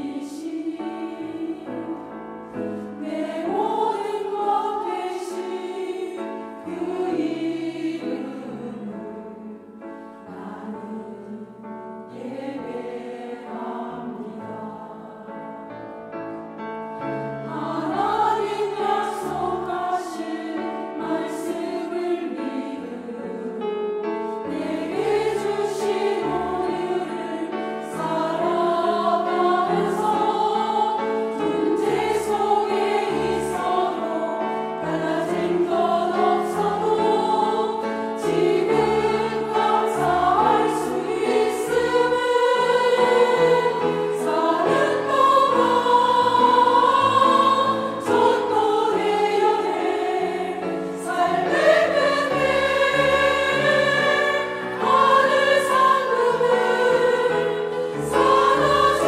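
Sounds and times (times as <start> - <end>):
women's choir singing: 0.0 - 16.4, 17.0 - 59.0.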